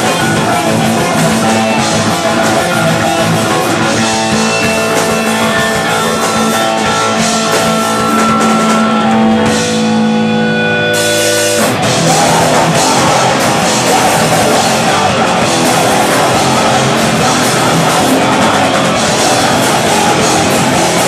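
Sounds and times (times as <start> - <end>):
punk band playing live: 0.0 - 21.0.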